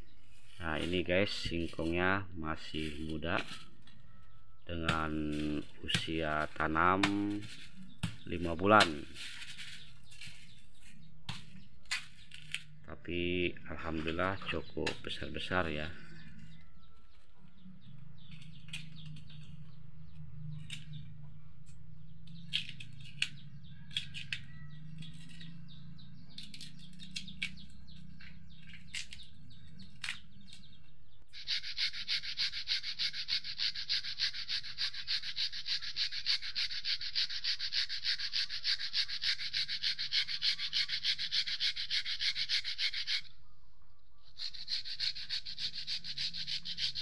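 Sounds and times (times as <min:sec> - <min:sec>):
knife scraping roots: 0:00.2 - 0:02.0, 0:02.6 - 0:04.1, 0:04.8 - 0:12.8, 0:22.3 - 0:30.7, 0:31.3 - 0:43.3, 0:44.3 - 0:47.0
metal grater rasping: 0:31.4 - 0:43.3, 0:44.4 - 0:47.0.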